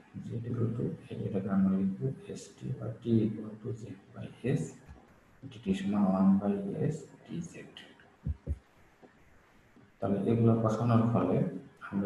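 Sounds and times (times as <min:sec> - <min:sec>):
soft low thumps: 0:08.2 - 0:08.7.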